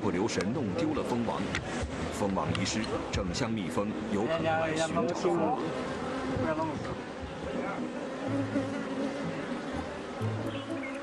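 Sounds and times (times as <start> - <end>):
bees buzzing: 0.8 - 11.0.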